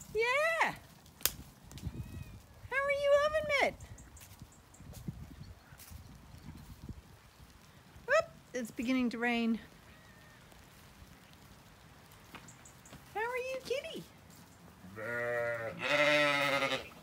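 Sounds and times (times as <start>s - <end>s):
sheep bleating: 14.8s - 17.0s.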